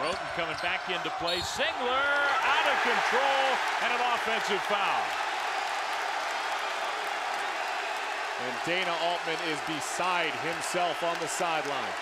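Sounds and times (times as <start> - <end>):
crowd cheering and applauding: 0.0 - 12.0.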